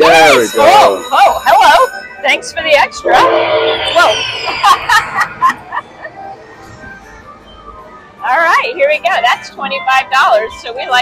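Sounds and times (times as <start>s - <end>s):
slot machine electronic tones: 2.9s - 6.4s.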